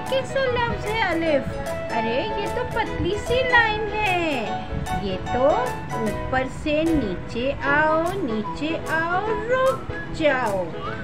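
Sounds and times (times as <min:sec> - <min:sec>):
background music: 0:00.0 - 0:11.0
woman's sing-song calls: 0:07.0 - 0:11.0.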